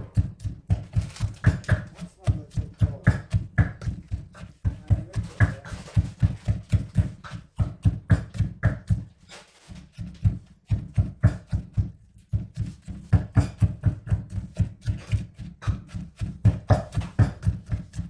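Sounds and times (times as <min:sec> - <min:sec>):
pestle pounding in mortar: 0:00.0 - 0:18.0.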